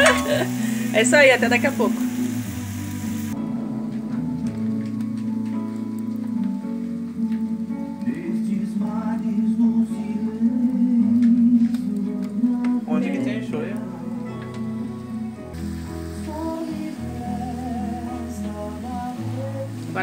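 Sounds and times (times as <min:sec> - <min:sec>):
slow background music: 0:00.0 - 0:20.0.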